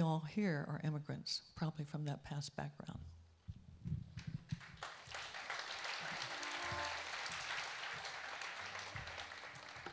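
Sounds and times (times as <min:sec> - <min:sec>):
audience applauding: 0:04.6 - 0:09.9.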